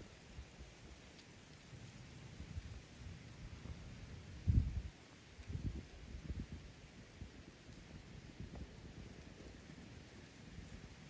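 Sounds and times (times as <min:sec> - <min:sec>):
wind buffeting microphone: 0:01.6 - 0:11.0.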